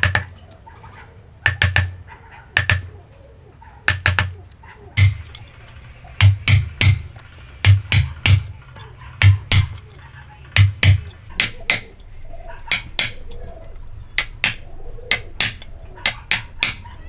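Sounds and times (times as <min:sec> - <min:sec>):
hammer striking wood chisel: 0:00.0 - 0:00.3, 0:01.4 - 0:02.0, 0:02.6 - 0:02.9, 0:03.9 - 0:04.4, 0:05.0 - 0:05.4, 0:06.2 - 0:08.5, 0:09.2 - 0:09.8, 0:10.5 - 0:12.0, 0:12.7 - 0:13.2, 0:14.2 - 0:16.8.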